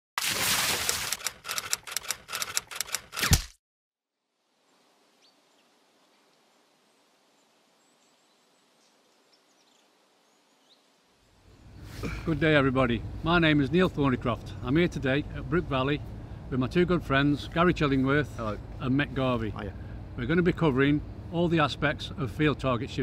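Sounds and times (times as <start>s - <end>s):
rapid rattle of sharp clicks: 1.1s - 3.4s
faint open-air ambience: 4.1s - 23.0s.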